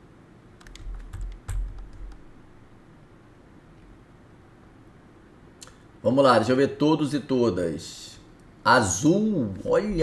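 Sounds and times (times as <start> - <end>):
computer keyboard keystrokes: 0.6 - 2.3.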